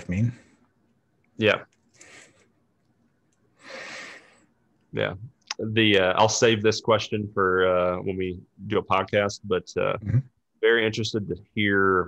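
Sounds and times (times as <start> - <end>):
person breathing: 1.9 - 2.6, 3.6 - 4.6.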